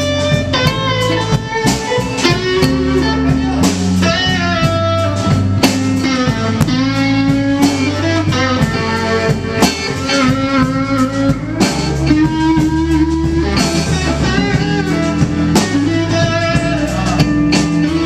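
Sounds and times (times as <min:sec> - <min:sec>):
lead guitar bending notes: 0:00.0 - 0:18.0
live blues band playing: 0:00.0 - 0:18.0.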